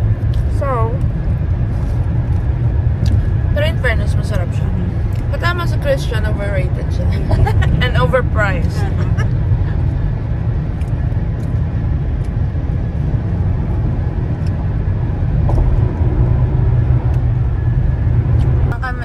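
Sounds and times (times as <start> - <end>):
car cabin road and engine rumble: 0.0 - 19.0
woman speaking: 0.5 - 1.0, 3.6 - 9.2, 18.7 - 19.0.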